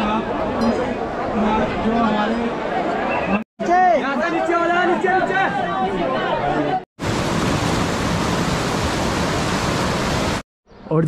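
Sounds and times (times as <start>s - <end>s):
stream rushing over boulders: 7.0s - 10.4s.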